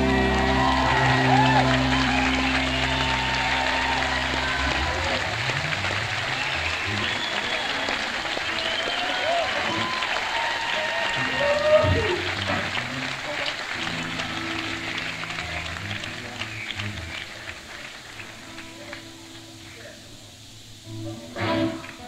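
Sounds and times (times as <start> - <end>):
crowd shouts: 0.0 - 13.7
audience applauding and cheering: 0.0 - 19.4.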